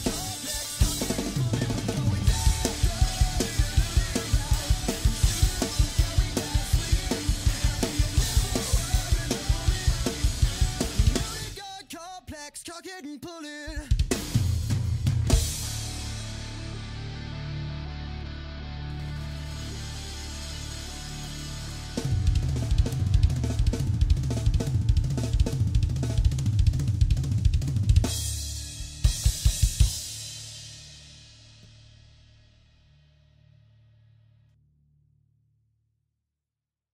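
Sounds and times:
drum kit playing: 0.0 - 11.6, 13.7 - 17.1, 19.3 - 32.2.

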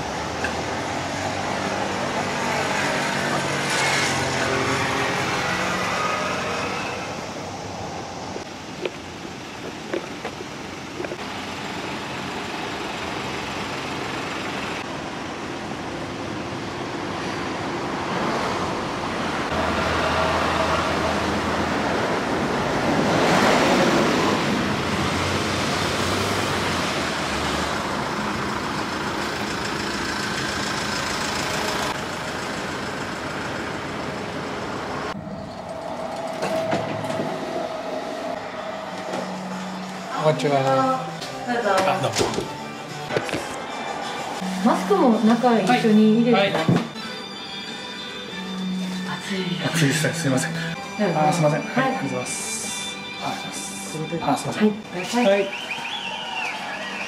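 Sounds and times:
passing vehicles rushing: 0.0 - 47.0.

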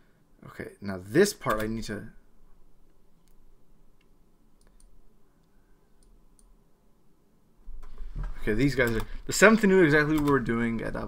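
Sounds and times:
faint sharp clicks: 4.0 - 6.5.

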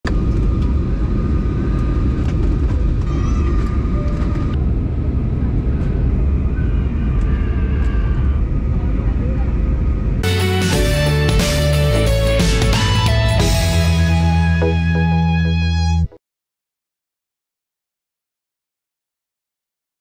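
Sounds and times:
jet engines rumbling: 0.1 - 15.7
faint passenger voices: 0.6 - 10.2.

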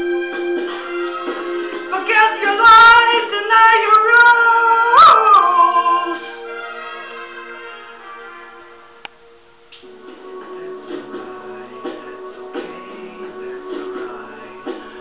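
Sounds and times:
guitar: 0.0 - 15.0
person singing: 1.8 - 6.4, 9.8 - 15.0.

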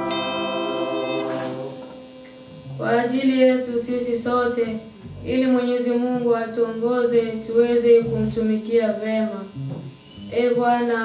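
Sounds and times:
held instrumental chord: 0.0 - 3.4.

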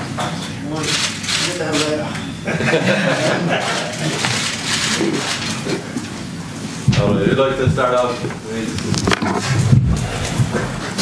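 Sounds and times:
chair scraping or creaking: 8.8 - 11.0.

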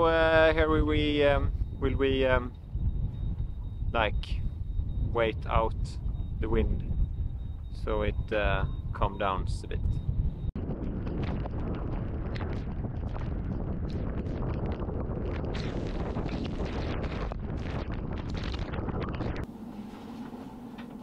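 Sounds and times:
strong wind on microphone: 0.0 - 19.5.

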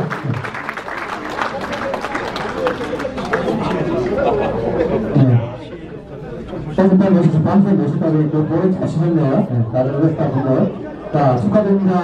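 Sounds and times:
indistinct chatter in a hall: 0.0 - 12.0.

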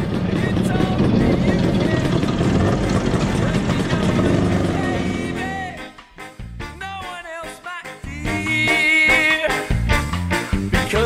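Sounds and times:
motor scooter engines running: 0.0 - 5.8
indistinct voices: 0.1 - 5.8.

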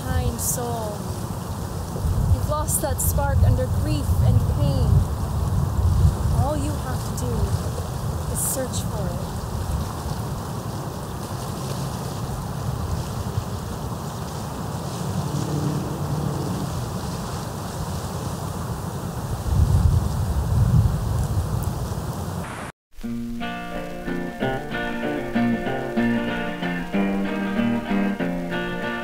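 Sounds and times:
wind buffeting microphone: 0.0 - 22.7.

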